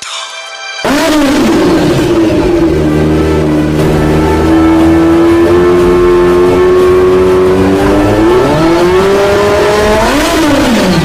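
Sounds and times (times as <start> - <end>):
motorcycle engine revving: 0.8 - 11.0.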